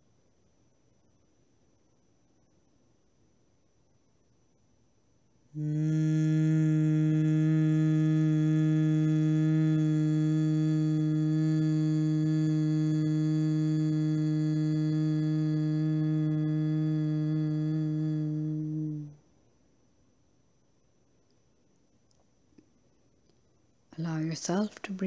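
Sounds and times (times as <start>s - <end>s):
woman humming low note: 5.6s - 19.2s.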